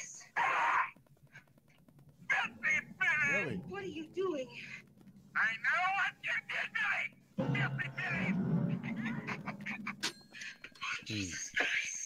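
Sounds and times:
eerie film score: 0.0s - 12.0s.

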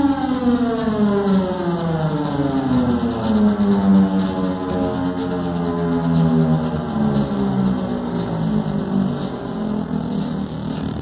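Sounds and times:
synthesizer tone sliding down: 0.0s - 11.0s.

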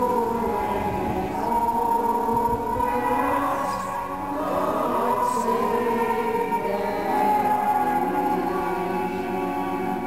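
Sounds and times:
organ accompaniment: 0.0s - 10.0s
women's choir singing: 0.0s - 10.0s.

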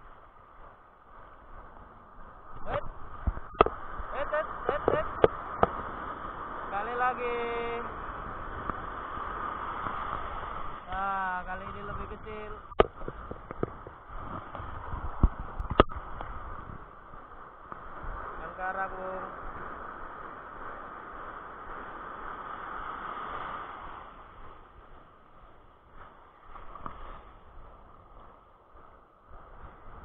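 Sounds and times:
surf washing around legs: 0.0s - 30.0s.

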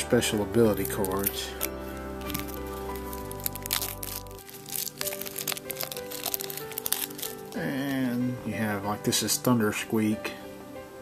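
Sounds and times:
background music: 0.0s - 11.0s
plastic wrap crackling: 0.2s - 8.4s.

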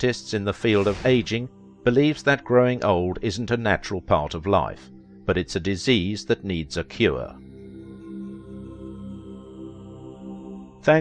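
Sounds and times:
ambient droning music: 0.0s - 11.0s.

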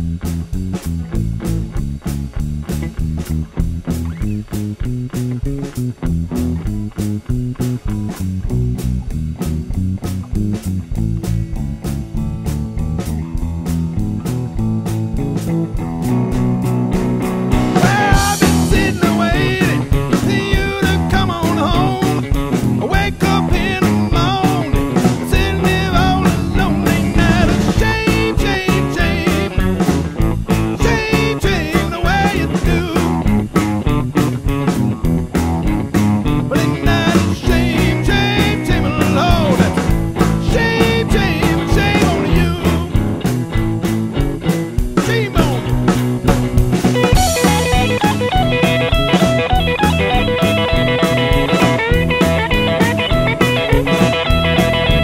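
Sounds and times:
instrumental band with guitar: 0.0s - 55.0s.

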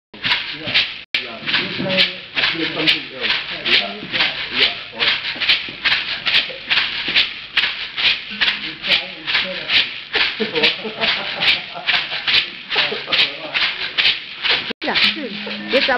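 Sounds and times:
maracas rattling: 0.2s - 15.9s.

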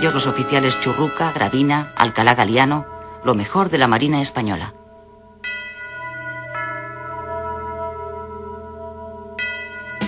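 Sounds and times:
struck bell tones: 0.0s - 10.0s.

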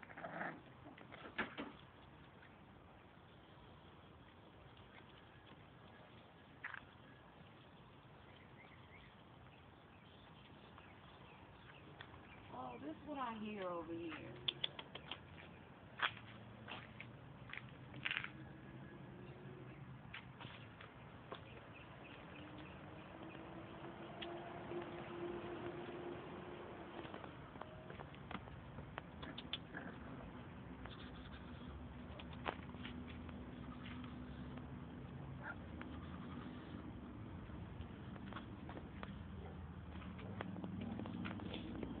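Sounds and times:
puppy paws clicking on pavement: 0.0s - 18.6s, 19.3s - 42.0s.

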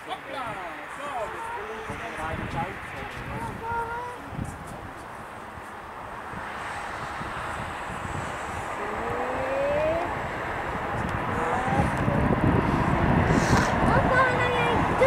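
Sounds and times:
jet engines on approach: 0.1s - 15.0s.

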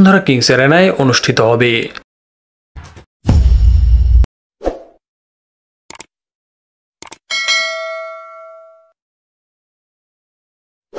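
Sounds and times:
bright bell ding: 7.3s - 9.0s.

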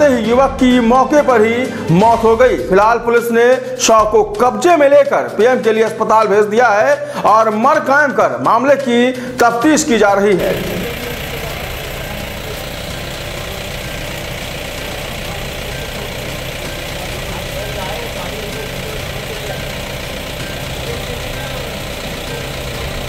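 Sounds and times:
people's voices: 8.9s - 23.0s
vehicle engine idling: 10.4s - 23.0s.

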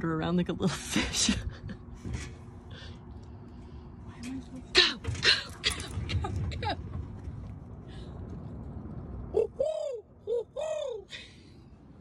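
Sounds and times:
low outdoor background rumble: 0.0s - 12.0s.

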